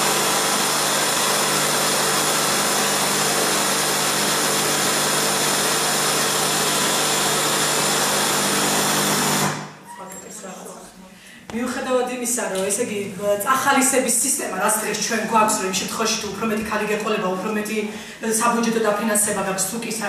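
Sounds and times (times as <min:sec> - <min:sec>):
machine whirring buzz: 0:00.0 - 0:09.8.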